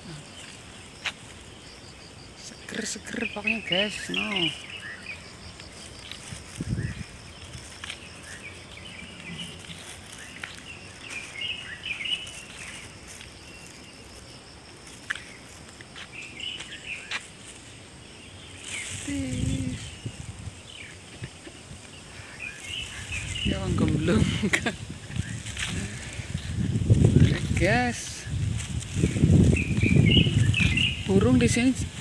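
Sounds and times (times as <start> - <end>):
high insect buzz: 0.0 - 32.0
small birds chirping: 0.0 - 32.0.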